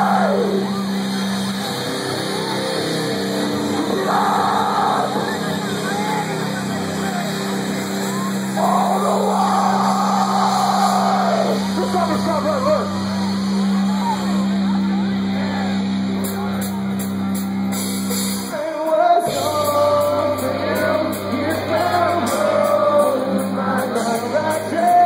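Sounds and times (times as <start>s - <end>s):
loud drawn-out yell: 0.0s - 0.9s, 2.3s - 15.8s
band droning note: 0.0s - 18.3s
crowd yelling and cheering: 0.0s - 25.0s.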